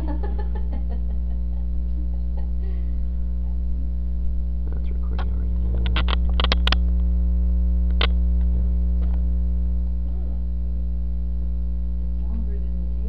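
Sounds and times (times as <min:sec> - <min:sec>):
electrical mains hum: 0:00.0 - 0:13.0
sharp click: 0:05.2 - 0:06.9, 0:07.9 - 0:08.2.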